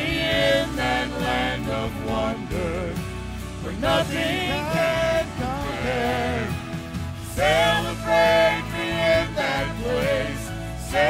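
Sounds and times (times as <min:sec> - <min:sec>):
vocal trio singing gospel: 0:00.0 - 0:11.0.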